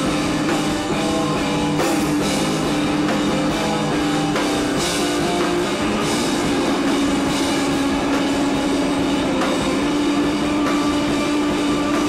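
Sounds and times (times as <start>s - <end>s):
distorted live rock noise: 0.0s - 12.0s.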